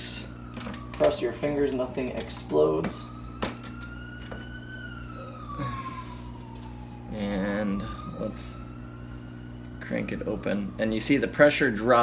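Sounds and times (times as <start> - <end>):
siren wailing: 0.0 - 12.0
steady low hum: 0.0 - 12.0.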